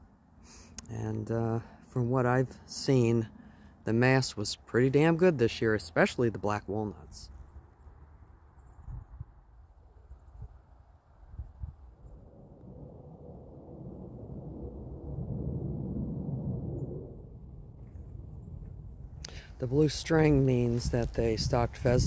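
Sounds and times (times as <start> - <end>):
low rumble: 11.4 - 22.0
footsteps on dry grass and gravel: 19.3 - 22.0.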